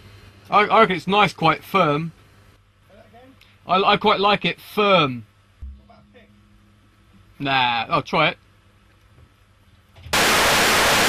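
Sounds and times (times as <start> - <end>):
television static hiss: 0.0 - 6.4, 7.3 - 11.0.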